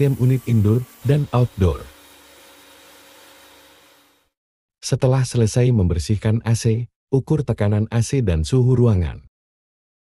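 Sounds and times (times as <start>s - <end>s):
pressure washer spraying water: 0.0s - 4.3s.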